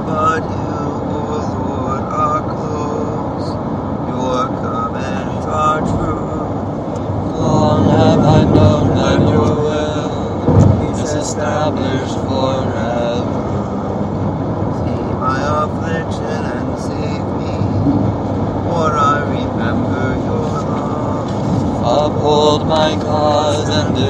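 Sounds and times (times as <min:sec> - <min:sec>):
voices reciting verses: 0:00.0 - 0:17.8, 0:18.6 - 0:24.0
steady rumbling noise: 0:00.0 - 0:24.0.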